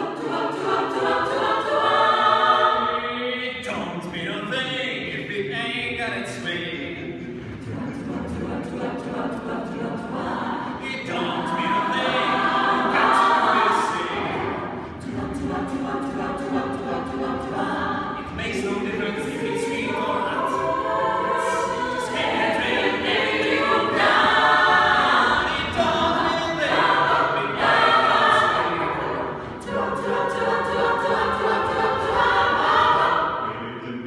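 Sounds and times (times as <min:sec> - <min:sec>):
a cappella ensemble singing: 0:00.0 - 0:34.0.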